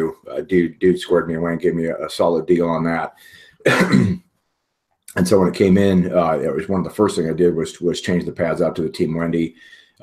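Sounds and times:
man clearing his throat: 0:03.6 - 0:04.2.

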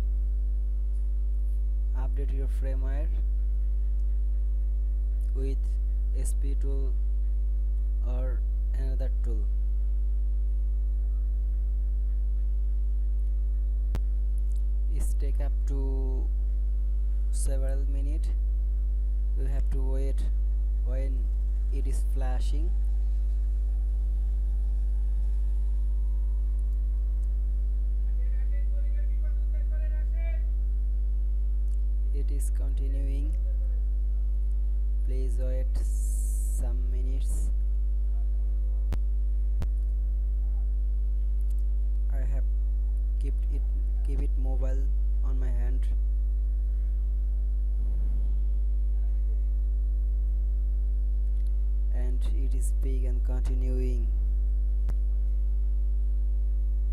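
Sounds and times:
low electrical mains hum: 0:00.0 - 0:56.9.

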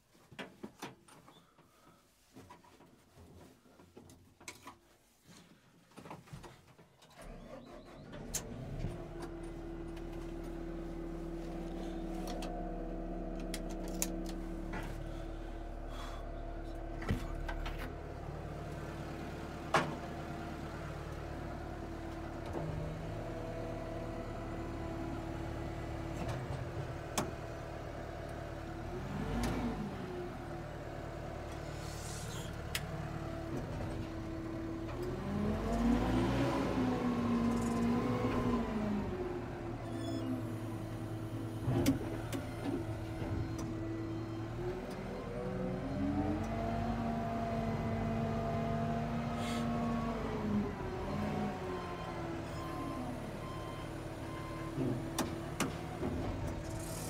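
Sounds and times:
diesel engine revving: 0:28.8 - 0:57.0.

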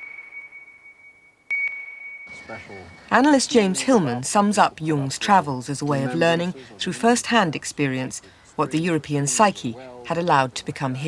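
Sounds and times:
electronic sonar ping: 0:00.0 - 0:03.3.

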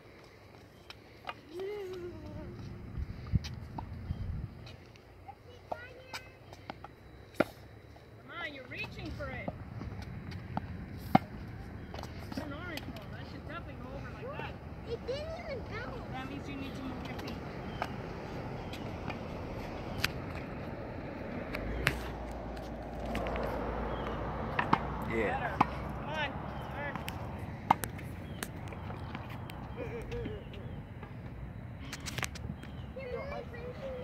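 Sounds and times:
tennis balls hit and bouncing: 0:05.7 - 0:07.6, 0:08.7 - 0:14.0, 0:16.5 - 0:20.5, 0:21.5 - 0:31.4
faint children's voices: 0:32.8 - 0:34.0.

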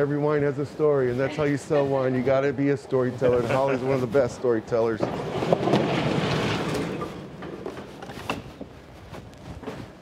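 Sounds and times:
footsteps: 0:00.9 - 0:10.0.

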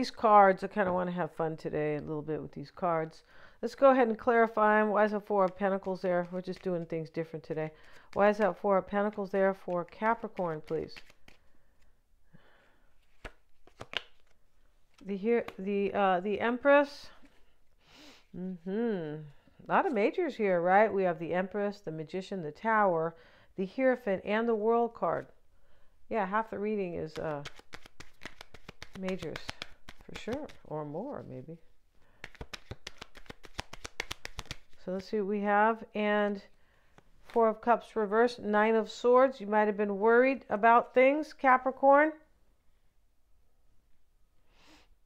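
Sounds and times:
cards shuffling: 0:05.1 - 0:12.0, 0:12.9 - 0:15.7, 0:26.9 - 0:31.3, 0:32.1 - 0:35.1, 0:36.2 - 0:37.4
cards snapping and tapping: 0:07.8 - 0:11.4, 0:13.0 - 0:14.3, 0:27.1 - 0:30.6, 0:32.2 - 0:34.8.

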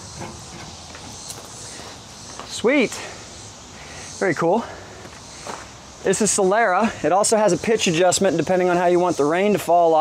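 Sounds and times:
outdoor background hiss: 0:00.0 - 0:10.0.

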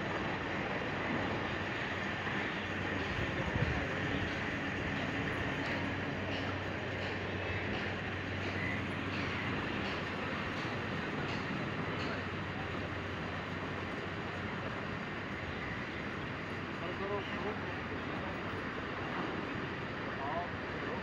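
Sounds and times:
distant motorway traffic rumble: 0:00.0 - 0:21.0.

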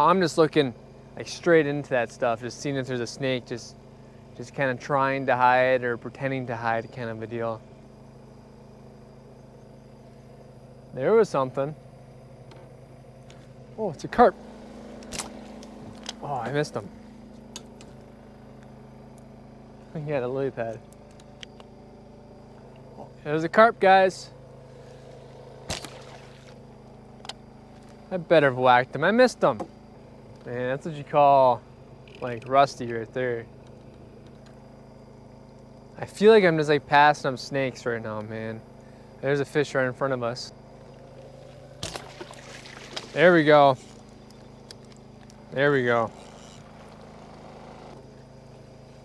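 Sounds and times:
low motor hum: 0:00.0 - 0:49.0
bow shot snap: 0:14.6 - 0:16.2, 0:25.2 - 0:26.6, 0:41.8 - 0:43.2
fish splashing in water: 0:25.2 - 0:26.7, 0:40.8 - 0:43.2.

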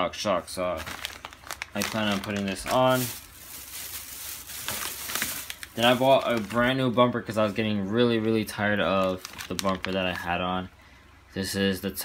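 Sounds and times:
plastic bag rustling: 0:00.5 - 0:10.4.

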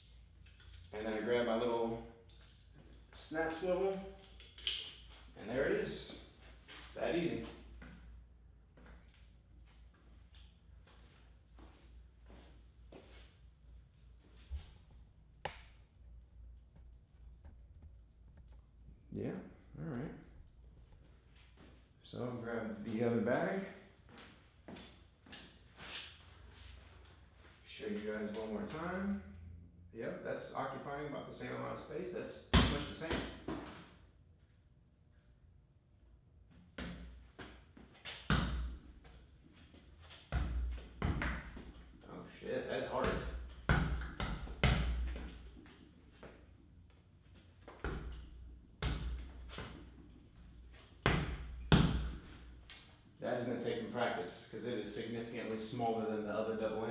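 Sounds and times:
soft footsteps and shuffling: 0:05.0 - 0:15.1, 0:20.6 - 0:29.0.

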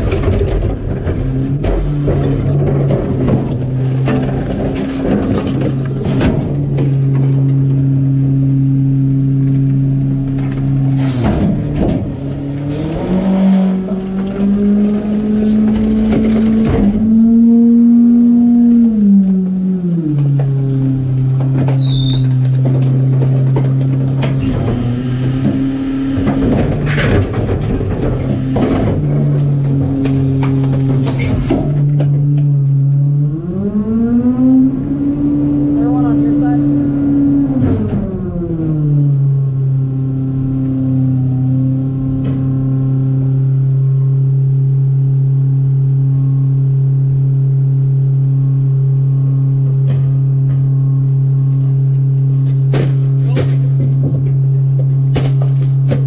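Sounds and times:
diesel truck engine idling and revving: 0:00.0 - 0:56.0
trash clattering into steel hopper: 0:21.4 - 0:32.2, 0:52.4 - 0:56.0.

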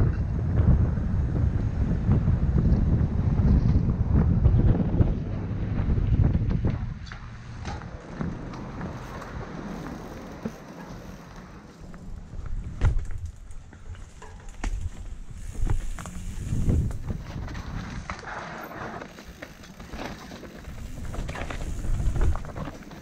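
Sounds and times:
wind buffeting microphone: 0:00.0 - 0:18.3, 0:19.3 - 0:23.0
bike tyres rolling: 0:00.0 - 0:23.0
bike clicks and knocks: 0:06.2 - 0:23.0.

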